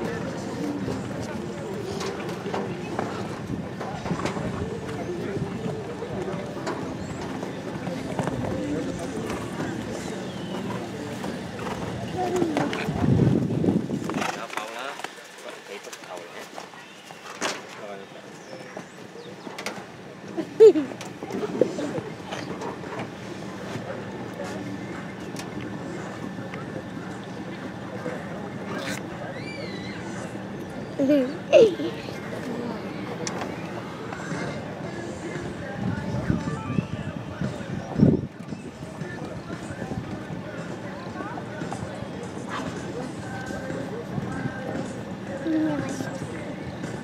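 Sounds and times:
faint distant voices: 0.0s - 47.0s
outdoor arena noise: 0.0s - 47.0s
people talking: 0.0s - 47.0s.

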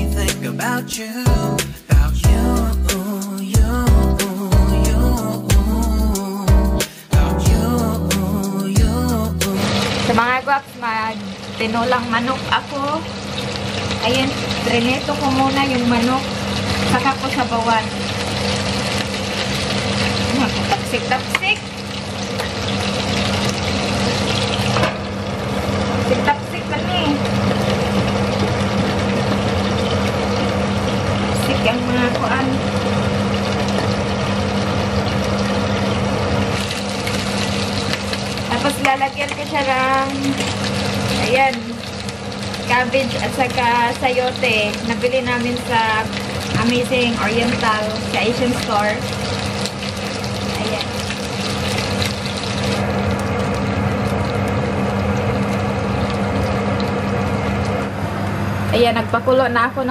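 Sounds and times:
chicken sizzling in a pan: 9.6s - 58.2s
metal tongs turning food: 36.6s - 41.7s.

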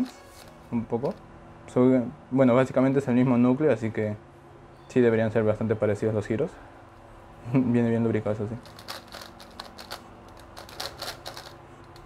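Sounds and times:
plastic puzzle clicking: 8.6s - 12.0s.

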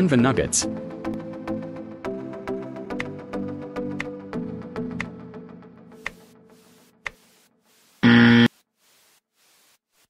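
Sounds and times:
electronic buzzer: 8.0s - 8.5s.

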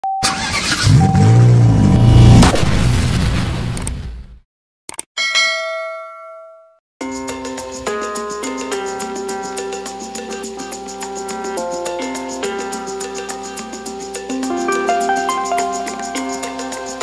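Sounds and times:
car engine starting and revving: 0.2s - 3.2s
music: 7.0s - 17.0s.

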